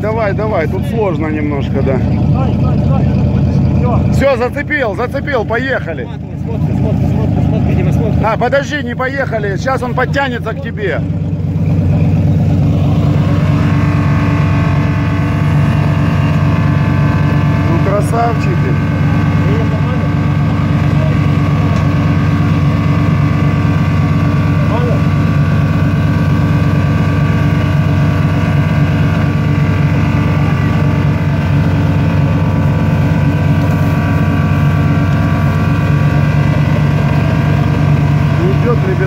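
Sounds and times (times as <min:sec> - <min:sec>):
off-road engine at high revs: 0:00.0 - 0:39.0.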